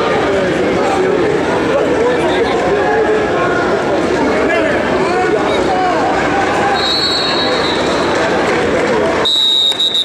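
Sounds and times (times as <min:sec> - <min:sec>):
spectators talking and calling out: 0:00.0 - 0:10.0.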